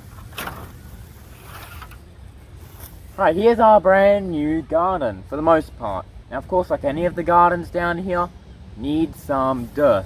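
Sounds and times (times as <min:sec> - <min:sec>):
wooden frame scraping on grass: 0:00.0 - 0:03.6.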